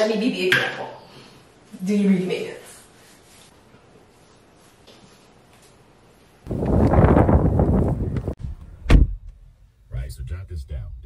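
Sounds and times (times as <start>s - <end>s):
wind noise on microphone: 6.5s - 9.2s
sharp thump: 8.8s - 9.5s.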